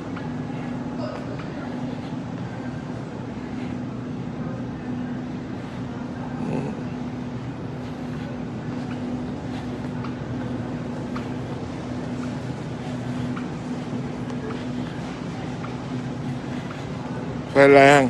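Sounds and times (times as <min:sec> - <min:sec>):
refrigerator and ventilation drone: 0:00.0 - 0:18.0
store background noise: 0:00.0 - 0:18.0.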